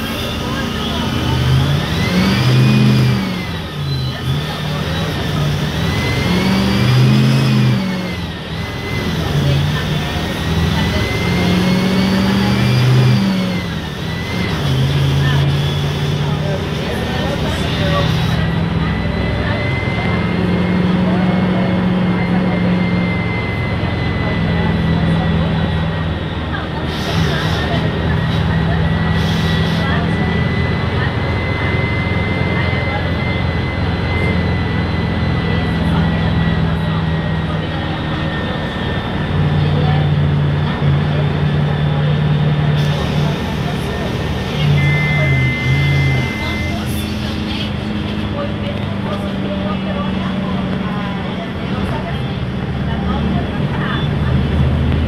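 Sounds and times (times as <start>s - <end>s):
bus diesel engine: 0.0s - 55.0s
high whine: 27.3s - 52.7s.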